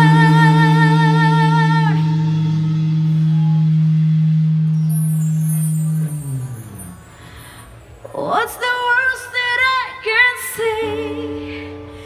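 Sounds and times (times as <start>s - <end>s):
rock band sustained chord: 0.0s - 7.5s
wavering high guitar note bending: 0.0s - 7.7s, 10.7s - 12.0s.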